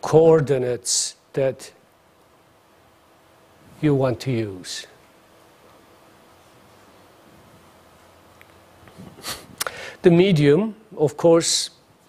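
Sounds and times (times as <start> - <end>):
man breathing in through nose: 9.2 - 10.0.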